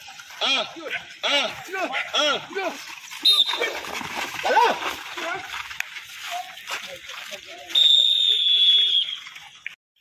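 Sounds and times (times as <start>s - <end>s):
faint outdoor ground noise: 0.0s - 10.0s
high whistle blast: 7.8s - 9.2s.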